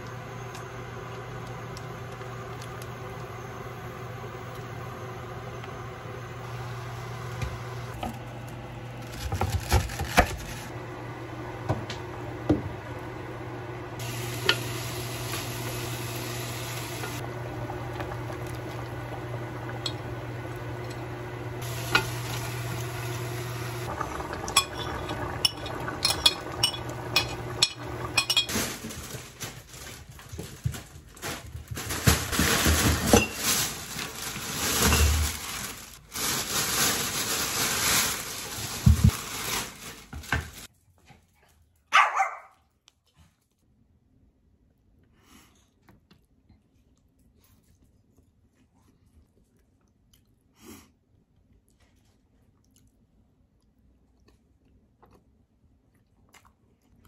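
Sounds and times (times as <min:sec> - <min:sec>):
plastic bag rustling: 0:08.9 - 0:10.8, 0:21.6 - 0:40.7
stew simmering in a pot: 0:10.7 - 0:28.4.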